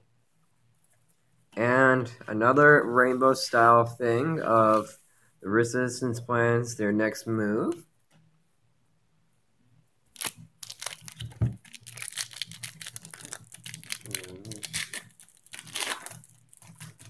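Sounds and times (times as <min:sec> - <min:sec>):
foil wrapper tearing and crinkling: 0:10.1 - 0:17.0.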